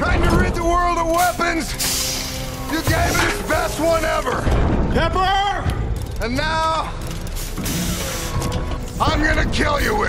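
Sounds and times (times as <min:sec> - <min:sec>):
robot mechanisms working: 0:01.1 - 0:04.6, 0:05.7 - 0:10.0
burst of hiss: 0:01.8 - 0:03.1, 0:07.4 - 0:08.4.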